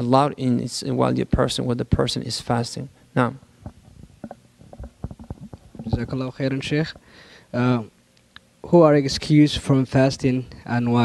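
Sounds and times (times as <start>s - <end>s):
microphone handling clicks and thumps: 3.4s - 7.1s.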